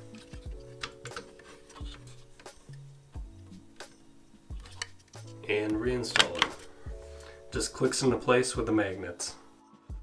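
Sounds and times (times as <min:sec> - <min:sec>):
slow beat background music: 0:00.0 - 0:10.0.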